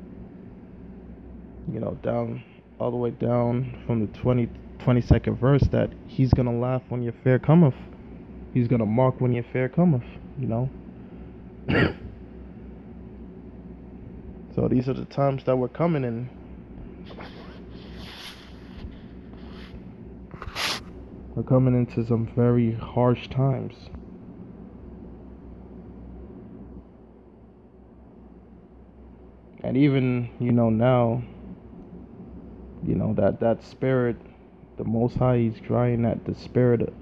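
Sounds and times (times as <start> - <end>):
faint background hum and hiss: 0.0 - 37.0
man clearing his throat: 11.6 - 12.2.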